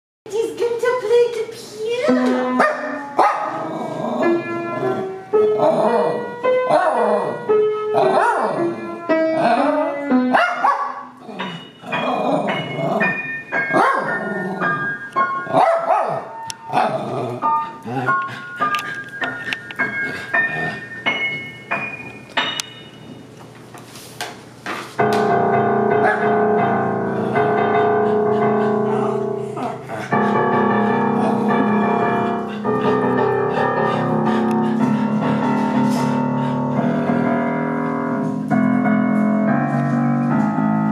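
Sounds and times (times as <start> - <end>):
piano notes: 0.3 - 23.8, 24.4 - 40.9
small dog barking: 2.6 - 3.6, 10.3 - 11.1, 15.5 - 16.3.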